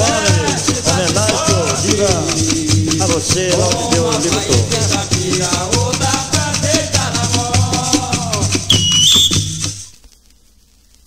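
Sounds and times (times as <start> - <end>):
deep drums: 0.0 - 9.9
whistle blowing: 8.7 - 10.0.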